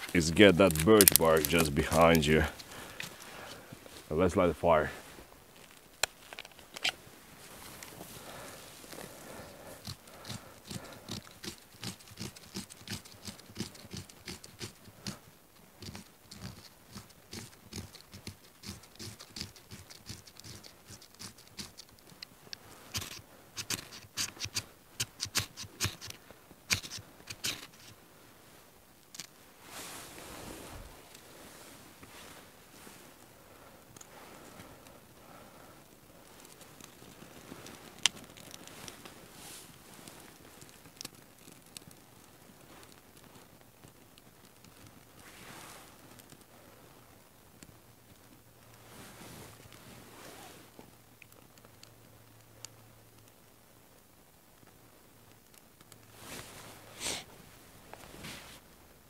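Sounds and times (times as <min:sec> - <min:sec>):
knife scraping: 0:09.8 - 0:14.8, 0:22.9 - 0:26.1, 0:26.7 - 0:27.9
soft rush: 0:29.4 - 0:34.8.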